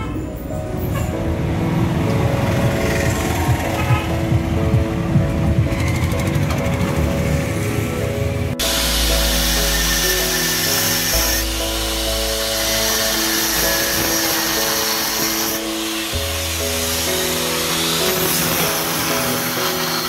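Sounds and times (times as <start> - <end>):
background music: 0.0 - 20.0
angle grinder on metal: 8.6 - 20.0.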